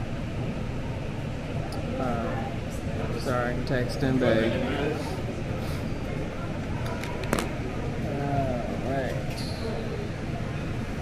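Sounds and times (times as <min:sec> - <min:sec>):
faint voices: 0:00.4 - 0:11.0.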